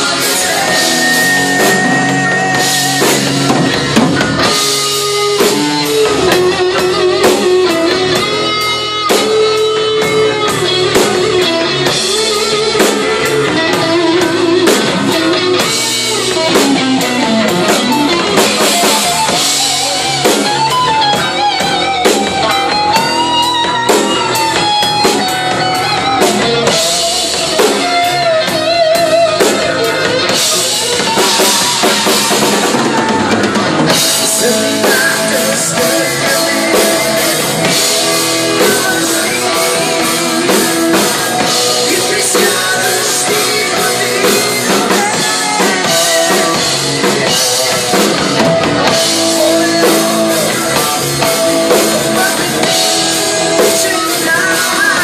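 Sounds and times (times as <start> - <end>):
bending lead guitar line: 0.0 - 55.0
live rock band: 0.0 - 55.0.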